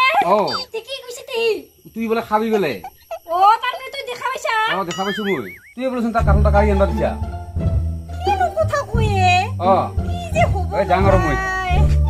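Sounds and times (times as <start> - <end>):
woman talking animatedly: 3.2 - 4.8, 8.2 - 9.5
low background music: 5.8 - 12.0.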